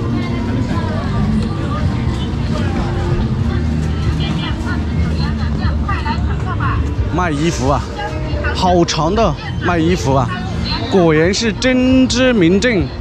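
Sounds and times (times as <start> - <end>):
babble of many voices: 0.0 - 13.0
traffic rumble: 0.0 - 13.0.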